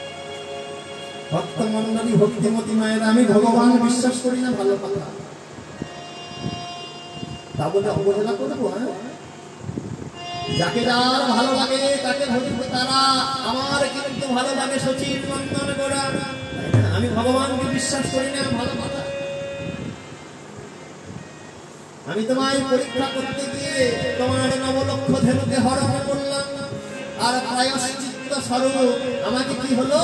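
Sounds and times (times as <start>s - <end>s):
faint sound system hiss: 0.0s - 30.0s
harmonium steady note: 0.0s - 30.0s
soft low thumps: 16.7s - 17.6s.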